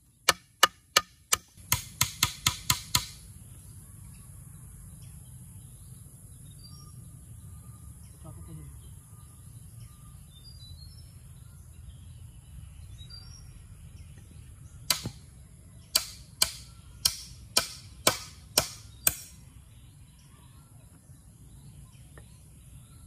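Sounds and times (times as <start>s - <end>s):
hammer striking wooden pole: 0.2s - 3.2s, 14.9s - 15.2s, 15.9s - 19.4s.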